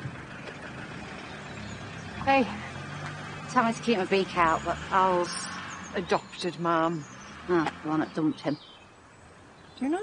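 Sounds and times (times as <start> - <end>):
light outdoor noise: 0.0 - 10.0.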